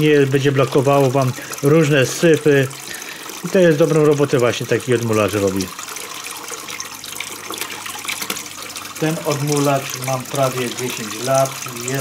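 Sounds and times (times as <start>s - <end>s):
water trickling through siphon: 0.0s - 12.0s.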